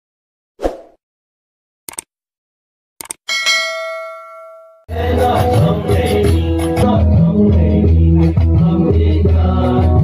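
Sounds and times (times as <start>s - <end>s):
bell chime ringing: 3.3s - 4.9s.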